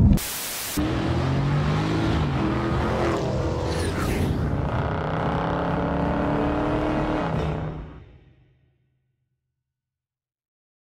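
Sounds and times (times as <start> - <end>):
road noise: 0.8 - 8.4.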